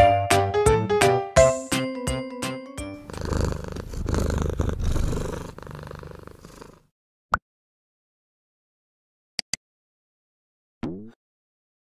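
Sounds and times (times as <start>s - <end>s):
cat purring: 3.0s - 6.9s.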